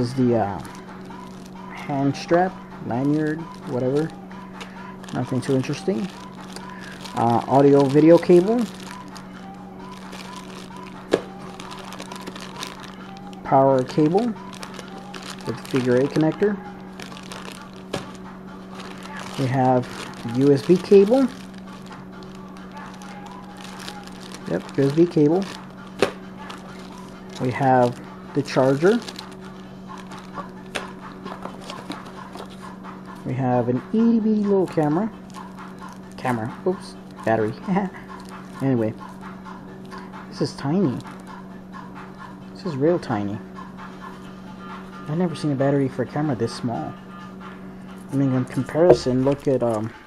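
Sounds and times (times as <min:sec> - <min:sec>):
cables rustling in plastic bags: 0:00.0 - 0:33.3, 0:34.4 - 0:41.4, 0:48.4 - 0:49.9
faint music: 0:00.0 - 0:50.0
steady low hum: 0:00.0 - 0:50.0.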